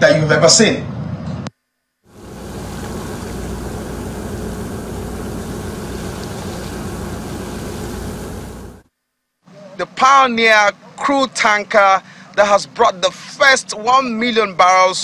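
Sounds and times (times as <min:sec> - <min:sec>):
low engine rumble: 0:02.1 - 0:08.8
water churning along hull: 0:02.1 - 0:08.8.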